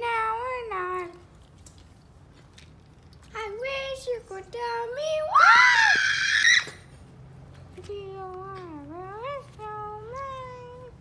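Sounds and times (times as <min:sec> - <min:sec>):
child's sliding wordless voice: 0:03.3 - 0:05.4, 0:07.8 - 0:11.0.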